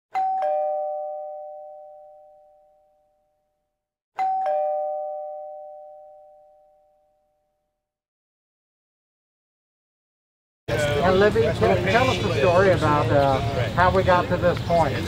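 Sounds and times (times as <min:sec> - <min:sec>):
two-tone doorbell chime: 0:00.1 - 0:07.8.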